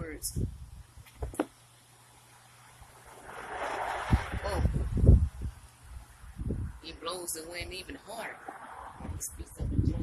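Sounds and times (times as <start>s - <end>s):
wind buffeting on microphone: 0.2s - 0.8s, 3.3s - 6.9s, 8.9s - 10.0s
wind rushing through pine trees: 2.4s - 6.9s.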